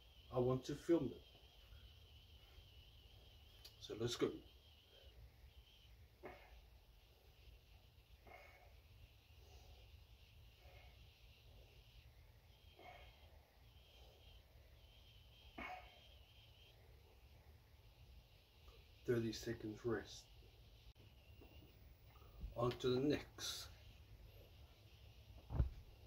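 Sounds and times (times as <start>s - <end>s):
faint short breaths: 8.2s - 11.9s.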